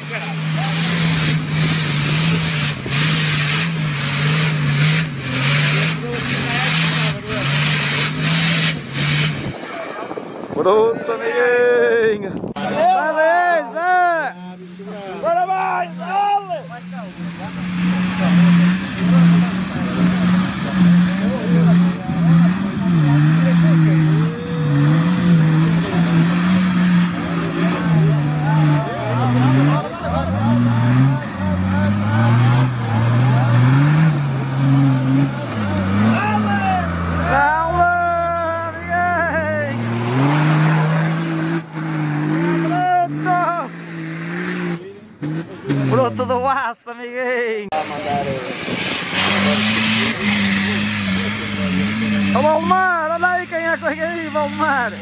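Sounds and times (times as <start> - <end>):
off-road truck engine revving: 0.0 - 55.0
spectators shouting: 15.0 - 18.0, 27.9 - 41.1.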